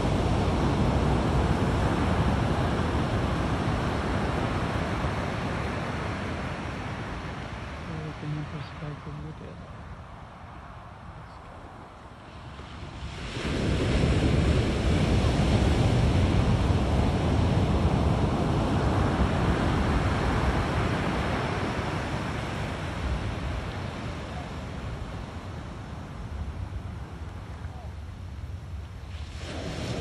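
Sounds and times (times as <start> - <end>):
wave breaking on beach: 12.4 - 26.2, 28.8 - 30.0.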